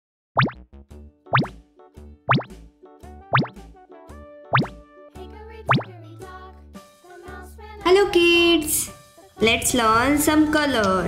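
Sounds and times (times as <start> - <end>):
rising bloop pop effects: 0.4 - 0.6, 1.4 - 1.6, 2.3 - 2.6, 3.3 - 3.6, 4.6 - 4.8, 5.7 - 5.9
light children's music: 0.9 - 11.0.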